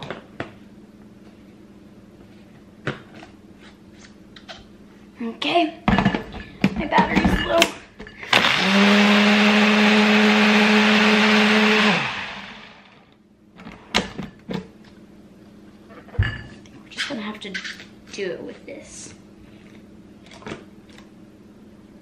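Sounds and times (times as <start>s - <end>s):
blender motor running: 8.3s - 13.0s.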